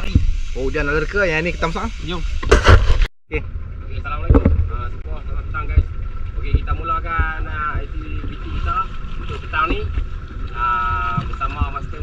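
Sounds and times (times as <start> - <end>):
wind rumble on microphone: 1.5 - 12.0
people talking: 3.3 - 9.9, 10.5 - 12.0.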